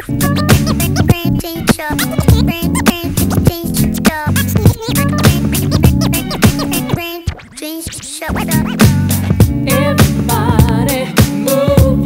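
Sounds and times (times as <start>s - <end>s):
hip hop beat: 0.0s - 12.0s
vinyl scratching on turntable: 0.0s - 12.0s.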